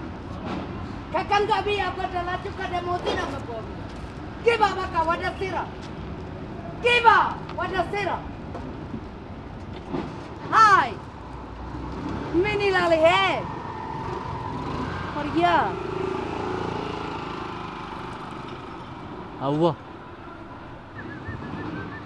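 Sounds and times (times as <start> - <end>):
street traffic noise: 0.0 - 22.0.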